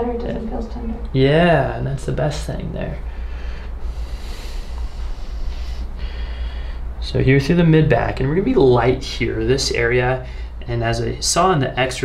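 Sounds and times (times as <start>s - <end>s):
steady low hum: 0.0s - 12.0s
person breathing out softly: 3.0s - 6.9s.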